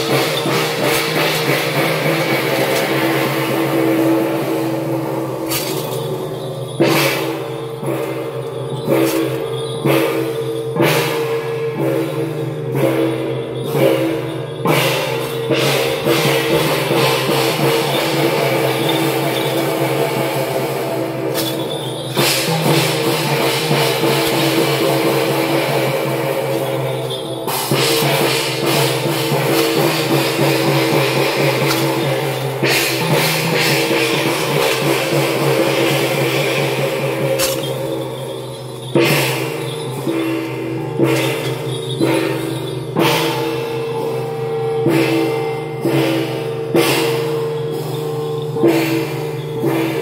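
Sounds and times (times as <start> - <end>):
drum beat: 0.0 - 50.0
gongs ringing: 0.0 - 50.0.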